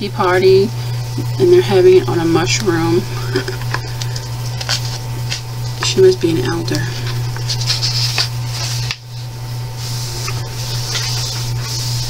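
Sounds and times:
paper page turning: 4.0s - 5.4s, 7.4s - 9.0s
hand rubbing across paper: 7.4s - 9.0s, 9.8s - 12.0s.

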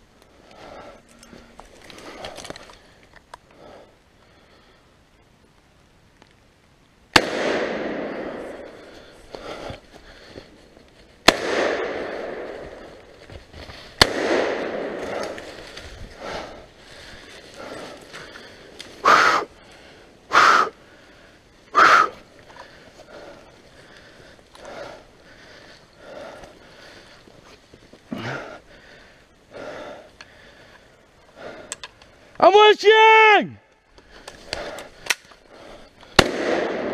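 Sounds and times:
gunshots echoing: 7.1s - 8.9s, 11.2s - 13.0s, 14.0s - 15.5s, 36.2s - 36.9s.

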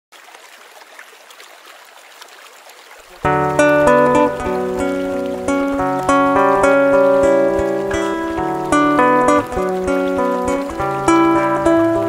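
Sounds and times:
creek water flowing over rocks: 0.1s - 12.0s.

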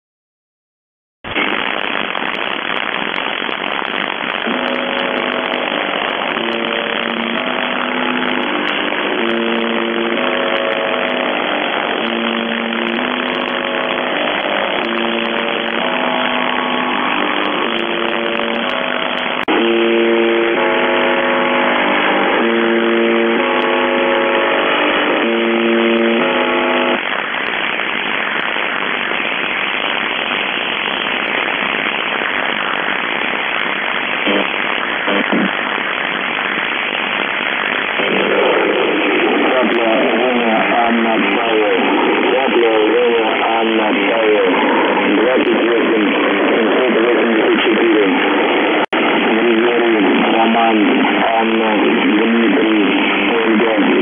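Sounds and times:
radio static hiss: 1.2s - 54.0s
low buzzing tones: 2.8s - 27.2s.

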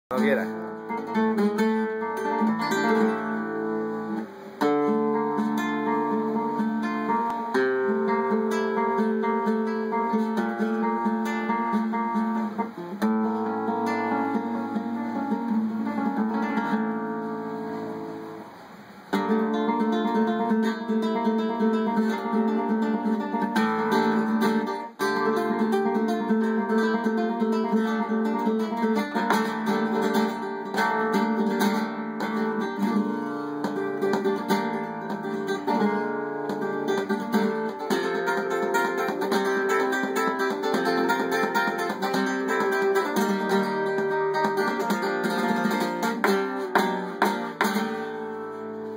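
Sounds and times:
flamenco guitar playing: 0.1s - 48.9s.

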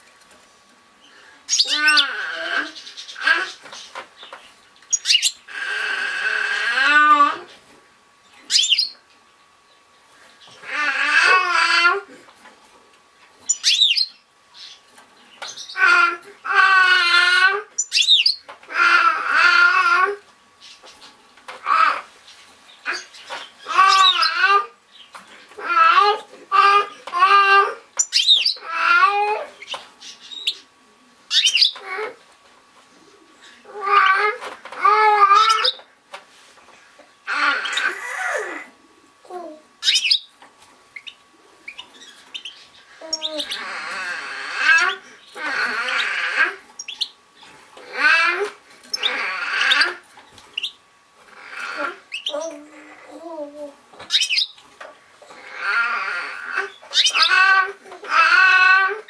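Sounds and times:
fast twittering birdsong: 1.0s - 5.5s, 8.2s - 10.6s, 13.4s - 15.9s, 17.8s - 18.5s, 28.0s - 28.6s, 31.3s - 31.8s, 39.8s - 40.4s, 41.0s - 43.7s, 44.7s - 47.5s, 48.8s - 50.8s, 52.1s - 52.5s, 54.1s - 54.6s, 56.6s - 57.6s
finch chirp: 1.5s - 5.5s, 8.4s - 9.0s, 13.4s - 15.9s, 17.8s - 18.5s, 22.7s - 25.2s, 28.0s - 28.6s, 29.6s - 30.7s, 31.3s - 31.8s, 39.8s - 40.3s, 41.0s - 43.7s, 44.7s - 47.2s, 48.9s - 50.8s, 52.1s - 52.5s, 54.1s - 54.6s, 56.6s - 57.5s
baby wailing: 1.7s - 3.6s, 5.5s - 7.5s, 10.6s - 12.2s, 15.8s - 17.7s, 18.7s - 20.2s, 21.6s - 22.1s, 23.7s - 24.8s, 25.6s - 27.8s, 28.6s - 29.6s, 33.7s - 35.8s, 37.3s - 39.6s, 43.0s - 46.6s, 47.8s - 50.0s, 51.3s - 53.8s, 55.3s - 59.0s.

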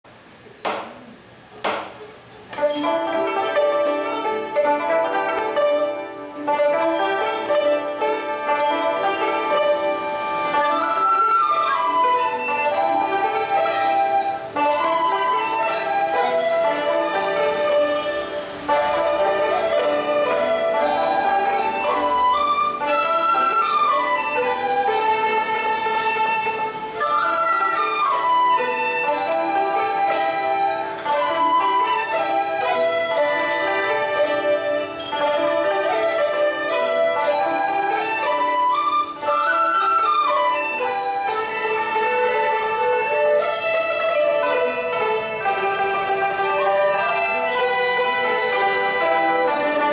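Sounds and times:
plucked lutes: 0.6s - 49.9s
bowed erhu: 2.5s - 49.9s
flute melody: 2.6s - 49.9s
orchestra playing: 2.6s - 49.9s.

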